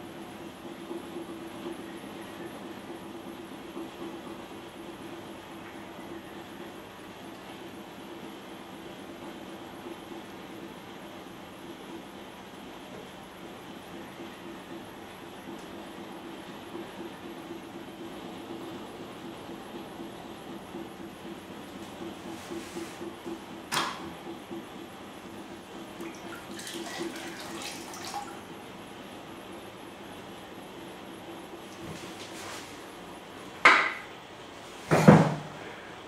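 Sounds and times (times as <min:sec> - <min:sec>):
potter's wheel humming: 0:00.0 - 0:34.6.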